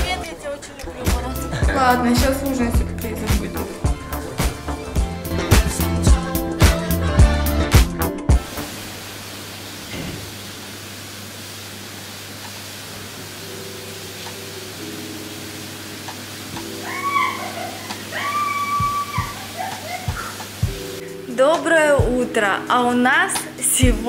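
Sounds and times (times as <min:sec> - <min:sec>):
soft music: 0:00.0 - 0:09.0, 0:13.0 - 0:24.0
heavy rain pouring: 0:08.4 - 0:21.3
water running off roof: 0:08.4 - 0:24.0.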